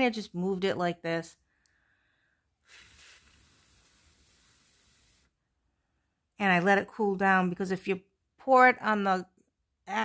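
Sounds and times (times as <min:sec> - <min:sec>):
faint steady hiss: 0:01.6 - 0:06.0.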